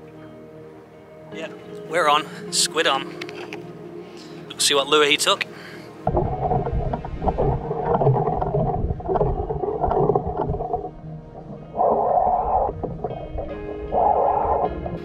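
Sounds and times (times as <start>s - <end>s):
underwater rumble and gurgling: 6.0s - 15.0s
bursts of rushing water: 6.1s - 15.0s.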